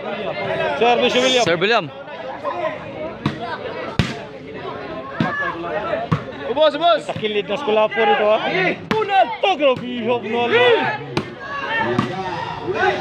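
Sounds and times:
crowd of spectators shouting: 0:00.0 - 0:13.0.

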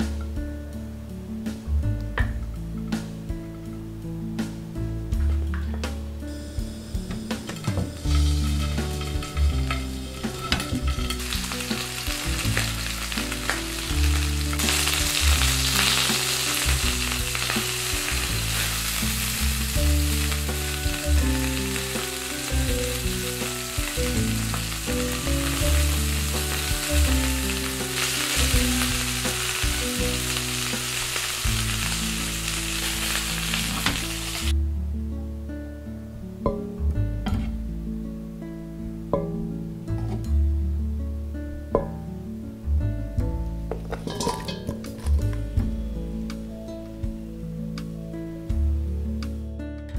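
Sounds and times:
background music: 0:00.0 - 0:49.9
chicken frying in hot oil: 0:08.0 - 0:34.5.

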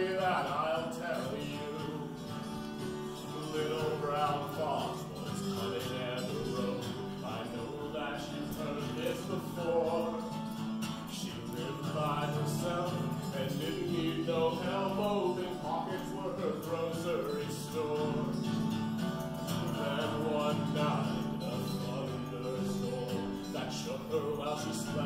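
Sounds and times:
man singing folk song: 0:00.0 - 0:25.0.

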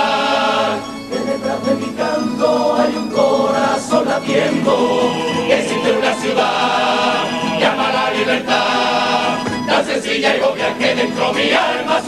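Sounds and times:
male choir singing: 0:00.0 - 0:12.0.

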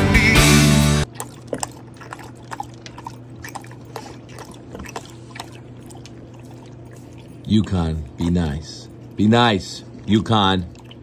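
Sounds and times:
dog lapping water: 0:01.0 - 0:09.2, 0:09.8 - 0:11.0.

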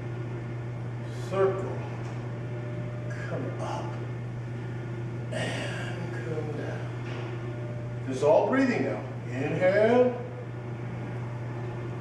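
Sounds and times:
fan or electrical hum: 0:00.0 - 0:12.0.

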